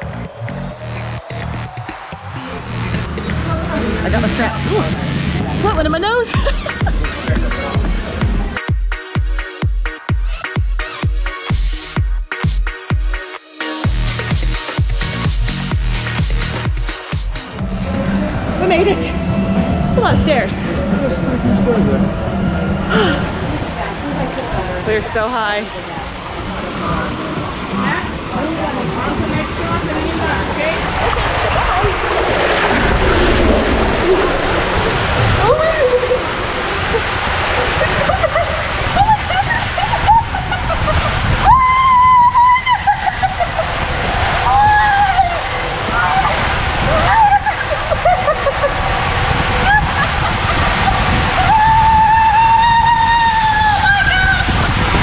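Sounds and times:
water rushing and sloshing: 0.0 - 8.7, 14.0 - 55.0
woman screaming: 35.3 - 36.4, 41.4 - 43.6, 44.4 - 48.2, 51.3 - 54.7.

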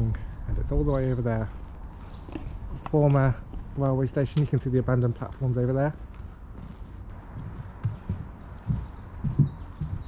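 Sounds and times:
dull thumps: 7.4 - 10.0
bird chirps: 7.8 - 10.0.

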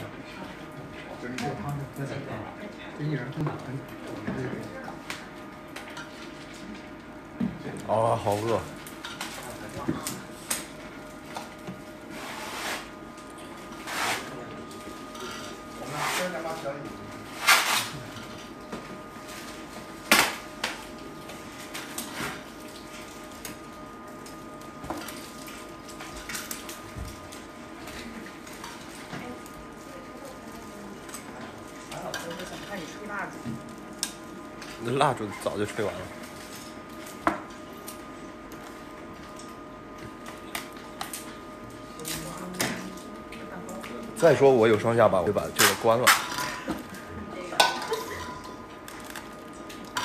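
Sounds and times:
dishes and cutlery clinking: 47.6 - 48.6.

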